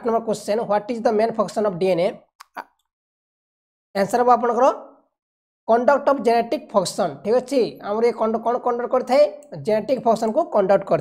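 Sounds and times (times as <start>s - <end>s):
soft mouth sound: 2.4s - 2.9s
man speaking: 5.7s - 11.0s.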